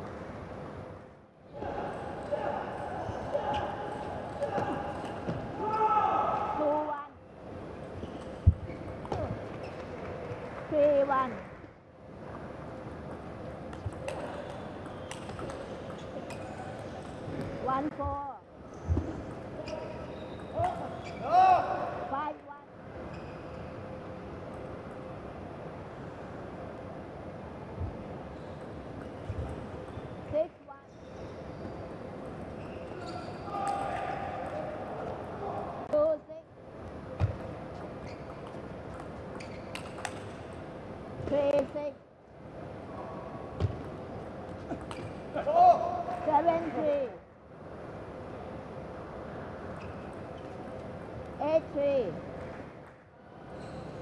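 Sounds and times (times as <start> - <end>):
steady background hum: 0.0 - 54.0.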